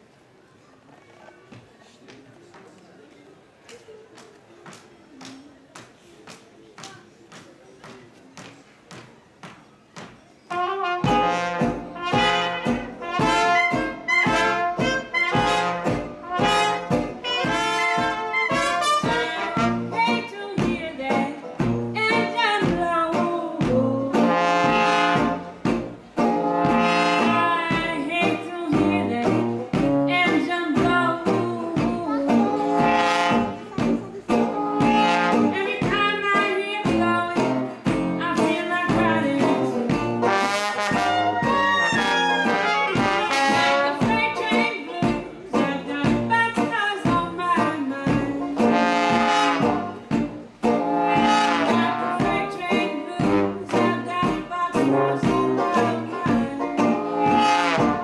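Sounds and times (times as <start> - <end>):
trombone: 10.5 - 20.2, 24.1 - 27.8, 28.9 - 30.4, 32.2 - 35.9, 39.0 - 44.7, 48.4 - 54.0, 54.7 - 58.0
strummed resonator guitar: 10.6 - 58.0
woman singing blues: 19.1 - 25.3, 27.0 - 34.0, 34.8 - 40.1, 43.1 - 49.9, 51.0 - 57.8
sousaphone bass: 41.0 - 44.3.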